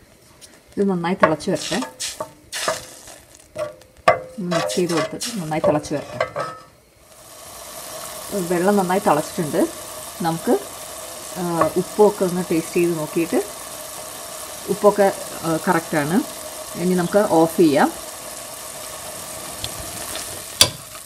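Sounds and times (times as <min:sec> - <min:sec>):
water hissing to a boil: 0:01.4 - 0:03.6, 0:04.4 - 0:06.0, 0:06.9 - 0:21.0
spatula scraping metal pot: 0:01.6 - 0:03.8, 0:04.4 - 0:06.7.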